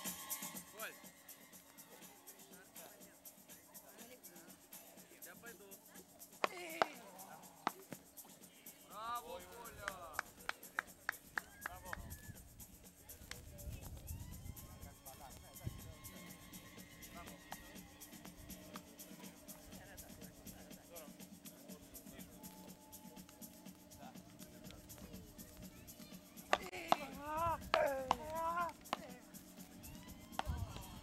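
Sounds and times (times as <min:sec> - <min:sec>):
faint background music: 0:00.0 - 0:31.0
voices: 0:00.4 - 0:31.0
paddle striking ball: 0:26.5 - 0:29.1.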